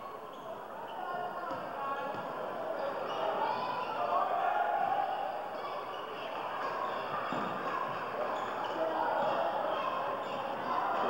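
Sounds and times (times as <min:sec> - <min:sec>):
chatter and calls of people: 0:00.0 - 0:11.0.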